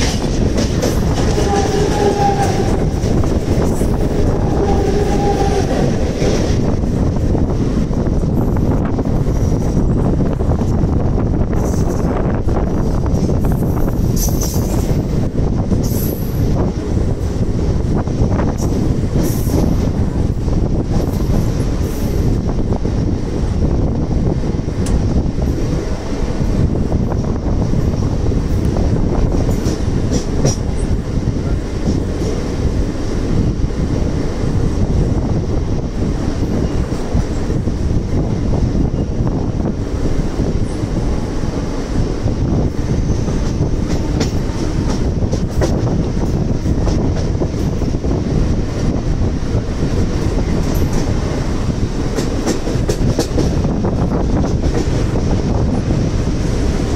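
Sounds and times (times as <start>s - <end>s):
rushing air: 0.0s - 56.9s
train wheels rumbling on rails: 0.0s - 56.9s.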